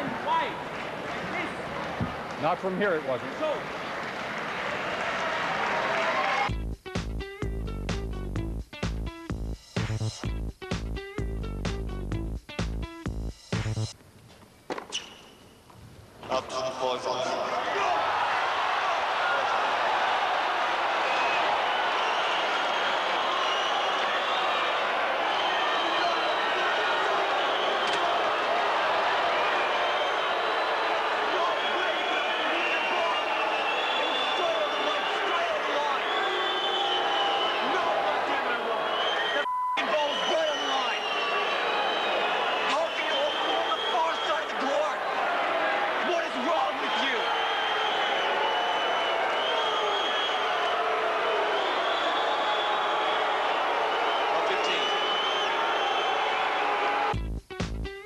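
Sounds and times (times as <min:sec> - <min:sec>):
whistles sliding in pitch: 0:21.1 - 0:24.7, 0:31.9 - 0:37.8, 0:38.8 - 0:44.5, 0:46.9 - 0:50.8, 0:53.8 - 0:56.4.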